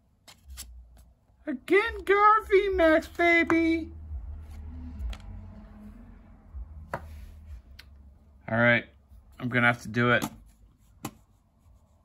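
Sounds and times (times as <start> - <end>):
low steady hum: 0.0 - 12.0
cards rustling: 0.1 - 3.8.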